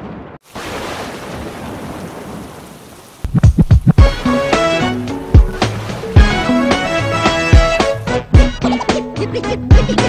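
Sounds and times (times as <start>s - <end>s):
rain hissing: 0.4s - 8.1s
music: 4.0s - 10.0s.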